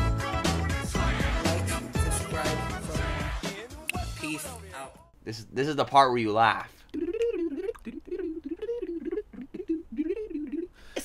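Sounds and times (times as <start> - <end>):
man humming: 6.9 - 11.0.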